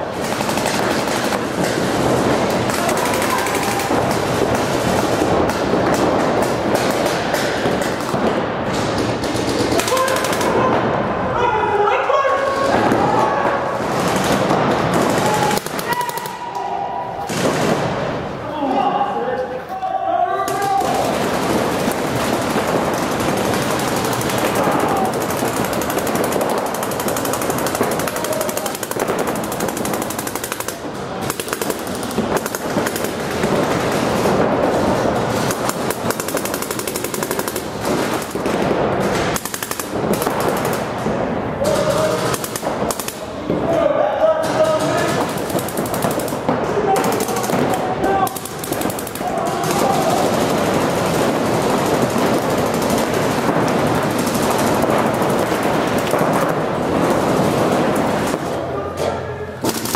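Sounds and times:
paintball markers firing rapidly: 0.0s - 10.9s, 12.4s - 16.6s, 20.5s - 43.6s, 44.4s - 58.6s, 59.6s - 59.9s
people shouting: 2.5s - 5.0s, 9.6s - 17.4s, 18.4s - 21.8s, 24.0s - 32.2s, 43.2s - 51.2s.

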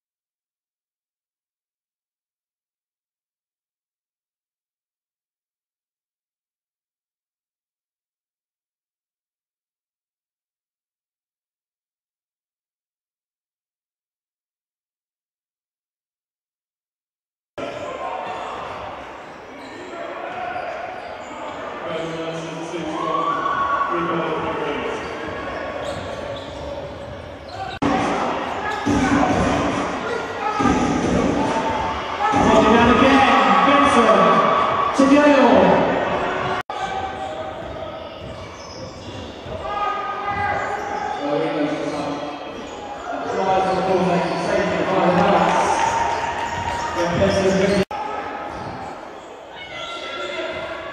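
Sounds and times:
voices echoing in sports hall: 17.6s - 50.9s
basketball bouncing on wooden court: 36.9s - 39.6s.

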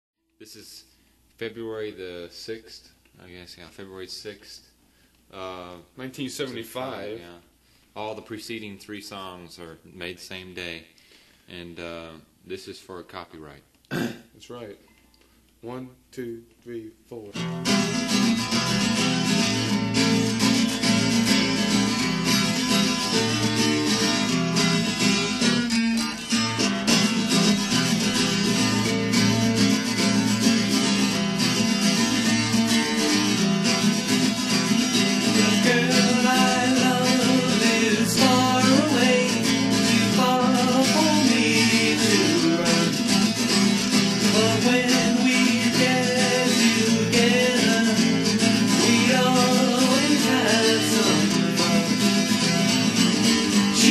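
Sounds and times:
acoustic guitar strumming: 17.4s - 53.9s.

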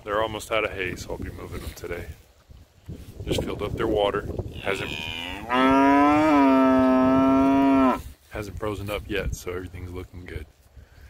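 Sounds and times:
cow mooing: 4.6s - 8.0s.

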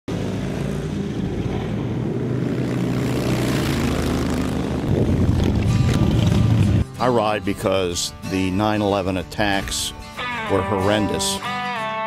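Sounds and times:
motorcycle engines rumbling: 0.1s - 7.0s.

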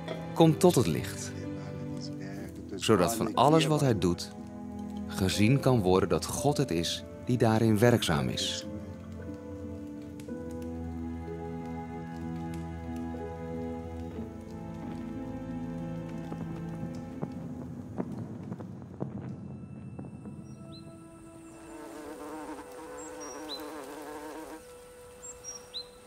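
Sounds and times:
held music notes: 19.2s - 26.0s
insects buzzing: 20.3s - 26.0s
small birds chirping: 20.3s - 26.0s.

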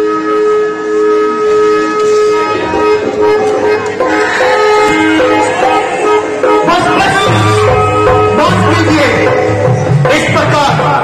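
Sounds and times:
loud held music chord: 0.0s - 10.4s.

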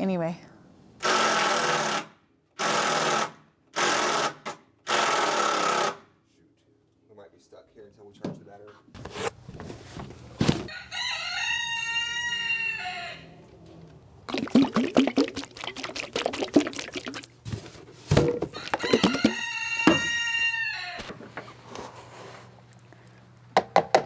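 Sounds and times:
rooster crowing: 10.7s - 13.5s, 18.5s - 21.1s.

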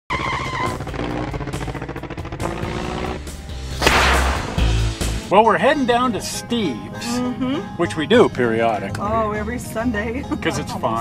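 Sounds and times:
intro music: 0.9s - 9.9s
loud whoosh: 3.4s - 5.3s.

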